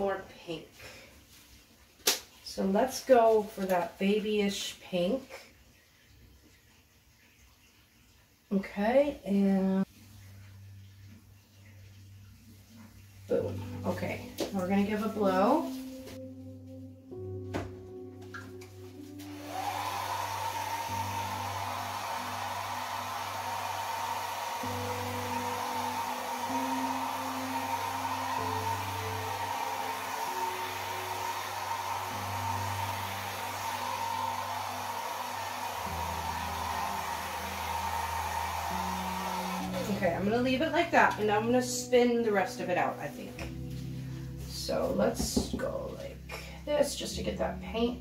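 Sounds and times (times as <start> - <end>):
soft background music: 0.0 - 6.4, 8.4 - 48.0
hair dryer motor whine: 19.2 - 40.3.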